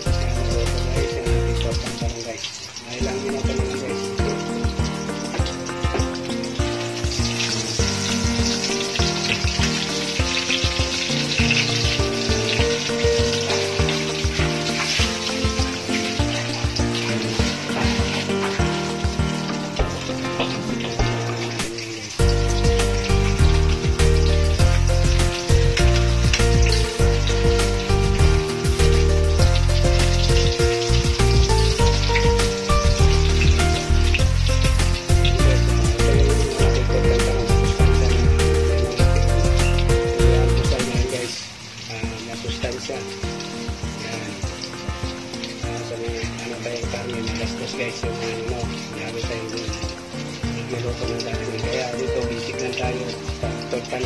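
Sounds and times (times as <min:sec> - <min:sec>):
background music with bass: 0:00.0 - 0:02.3, 0:03.0 - 0:41.3
omelette sizzling in oil: 0:00.0 - 0:54.0.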